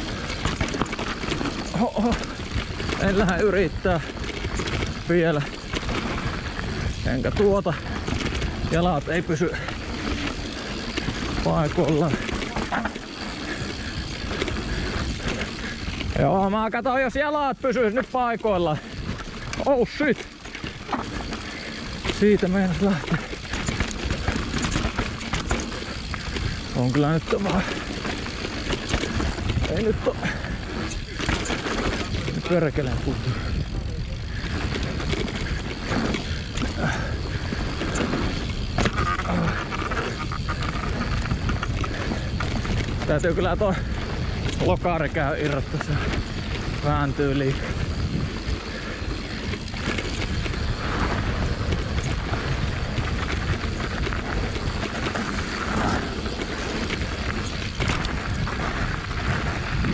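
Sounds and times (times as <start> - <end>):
bike rattles and knocks: 0.0 - 59.9
tyre and wind noise: 0.0 - 59.9
bike knocking over bumps: 0.1 - 8.9, 18.8 - 33.5.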